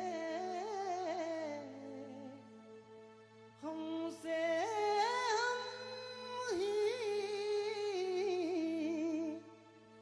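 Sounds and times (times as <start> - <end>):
man singing wordless alap: 0.0 - 2.4, 3.7 - 9.4.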